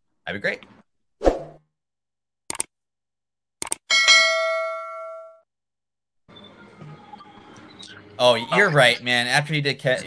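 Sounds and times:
sharp clicks: 2.5 - 2.7, 3.6 - 3.8.

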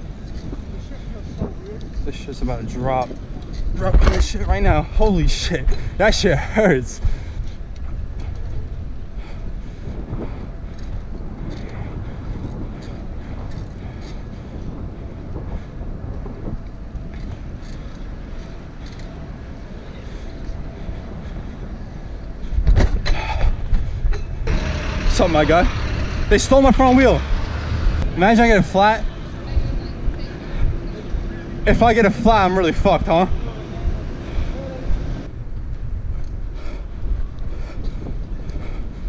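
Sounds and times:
bicycle tyres on asphalt: 0.0 - 39.0
traffic: 0.0 - 39.0.

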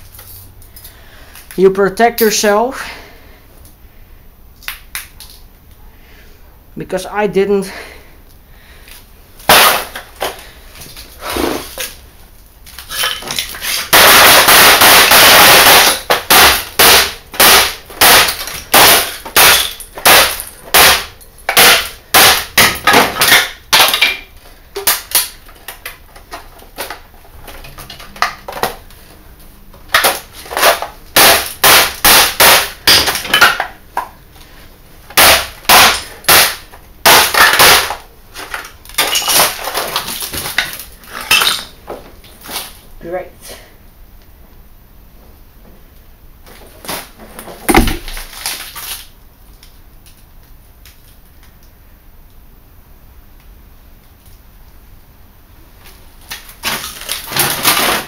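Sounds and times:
monitor crashing: 13.0 - 24.2, 47.6 - 48.8
hammer strikes on monitor: 47.7 - 48.1.

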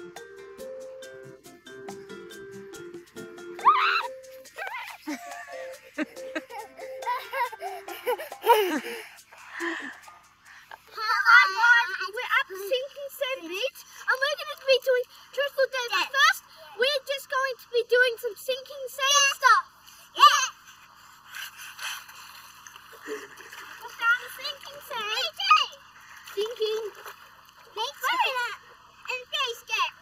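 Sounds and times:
children's voices and squeals: 3.6 - 5.1, 10.8 - 20.6, 27.8 - 30.0
feet splashing in shallow water: 21.4 - 28.7.

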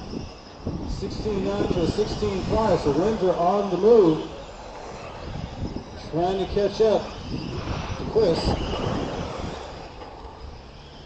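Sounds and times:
outdoor background rumble and hiss: 0.0 - 11.0.

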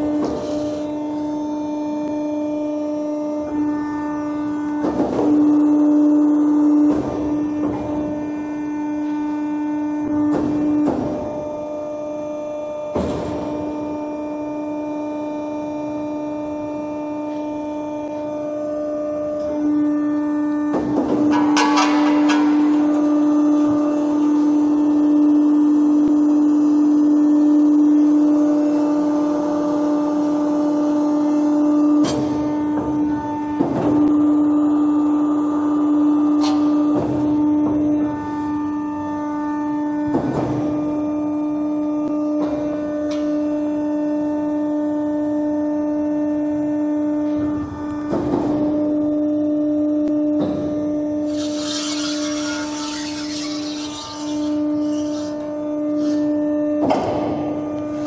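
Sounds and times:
machine drive humming: 0.0 - 58.0
metal knocks and clunks: 20.7 - 22.9.

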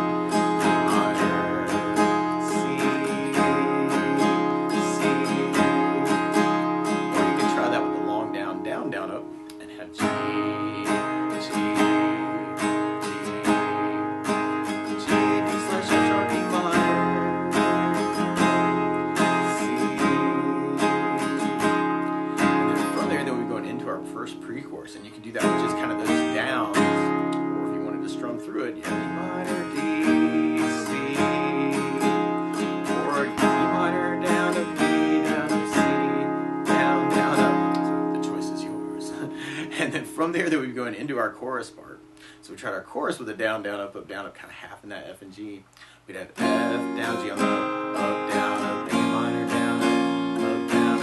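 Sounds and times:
acoustic guitar strumming: 0.0 - 51.0.

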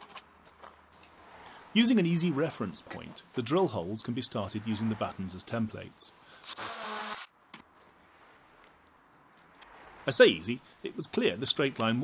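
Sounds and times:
power drill whirring: 6.4 - 7.3.

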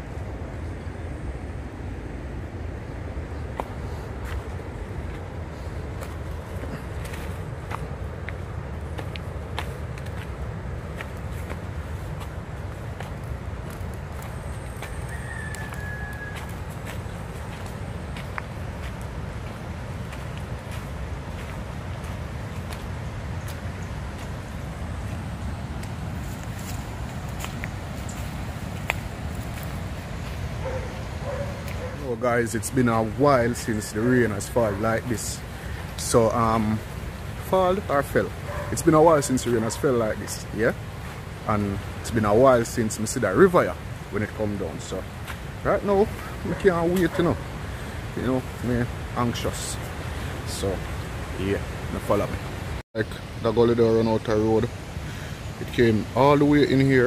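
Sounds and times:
distant river rushing: 0.0 - 57.0
footsteps on path: 3.3 - 49.0
bird chirp: 14.2 - 18.4.

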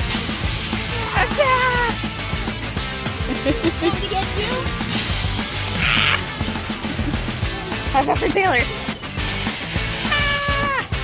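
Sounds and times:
aerosol can spraying hiss: 0.0 - 2.8, 4.9 - 6.2, 9.2 - 10.7
background music: 0.0 - 11.0.

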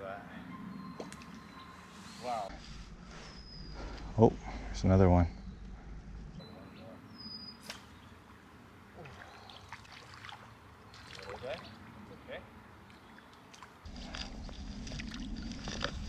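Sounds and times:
fish splashing at water surface: 9.0 - 11.6.

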